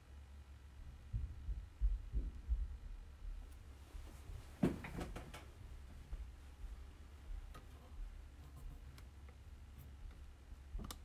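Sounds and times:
faint low hum: 0:00.0 - 0:11.0
microphone handling thumps: 0:04.0 - 0:07.6.

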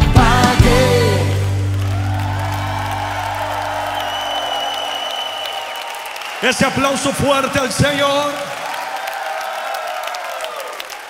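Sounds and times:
live band chord: 0:00.0 - 0:04.2
congregation cheering and applauding: 0:00.0 - 0:11.0.

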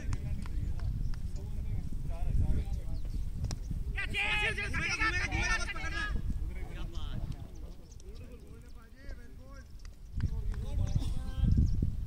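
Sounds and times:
wind rumble on microphone: 0:00.0 - 0:12.0
players shouting: 0:03.9 - 0:07.0.

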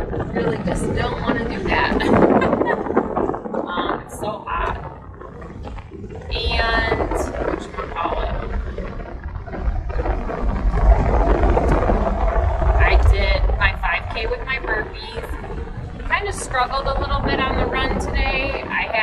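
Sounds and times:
woman's wordless voice: 0:00.0 - 0:02.7, 0:03.6 - 0:04.8, 0:06.3 - 0:08.6, 0:12.8 - 0:15.4, 0:16.1 - 0:19.0.

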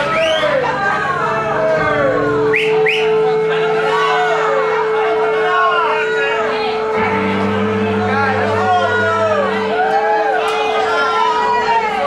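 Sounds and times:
crowd chatter: 0:00.0 - 0:12.0
steady held note: 0:00.8 - 0:11.7.

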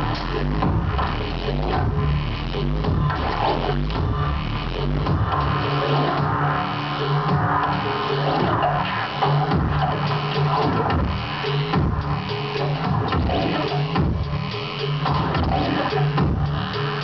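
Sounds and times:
dense synthesized texture: 0:00.0 - 0:17.0
low bass line: 0:00.0 - 0:17.0
percussive hits: 0:15.1 - 0:16.7.

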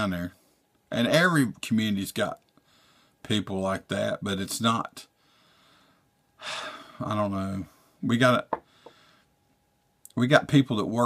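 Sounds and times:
man speaking: 0:00.0 - 0:02.4, 0:03.2 - 0:05.1, 0:07.0 - 0:08.6
man gasping breath: 0:05.2 - 0:07.0, 0:08.6 - 0:09.3.

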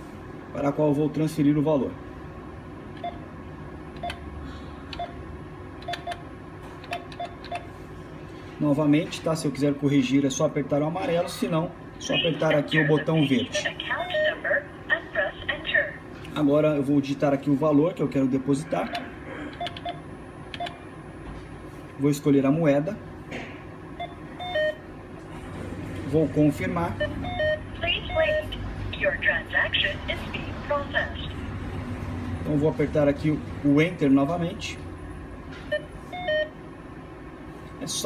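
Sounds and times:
keypad beeping: 0:04.0 - 0:04.2, 0:05.8 - 0:06.2, 0:06.9 - 0:07.7, 0:19.6 - 0:20.0, 0:20.6 - 0:20.8, 0:24.0 - 0:24.8, 0:27.0 - 0:28.6, 0:35.7 - 0:36.5.

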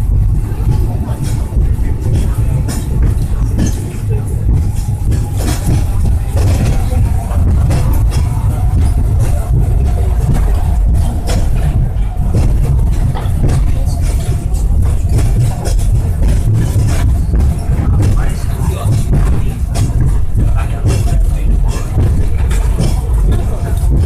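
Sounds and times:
funicular car rumbling on rails: 0:00.0 - 0:24.0
rail clicks and rattles: 0:00.0 - 0:24.0.

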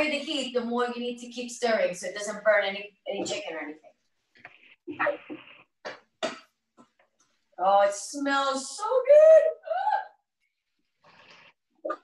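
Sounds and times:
woman's voice: 0:00.0 - 0:03.8, 0:07.6 - 0:10.1.

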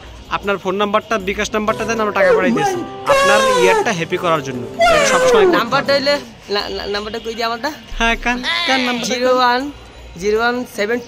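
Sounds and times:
man speaking loudly: 0:01.7 - 0:06.3
falling wail: 0:02.3 - 0:04.0, 0:04.7 - 0:06.2.

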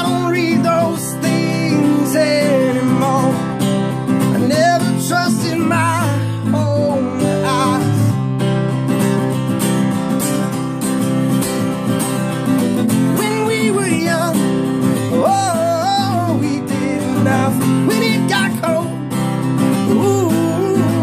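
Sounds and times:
man singing: 0:00.0 - 0:08.3, 0:13.0 - 0:21.0
acoustic guitar strumming: 0:00.0 - 0:21.0.

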